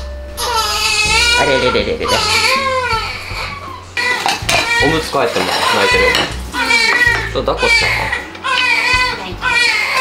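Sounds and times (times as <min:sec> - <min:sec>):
plates and dishes clattering: 0:02.1 - 0:10.0.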